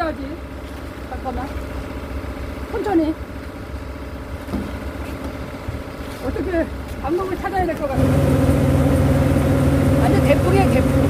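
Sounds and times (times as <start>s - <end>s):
harvester engine rumbling: 0.0s - 11.0s
auger discharging grain: 8.0s - 11.0s.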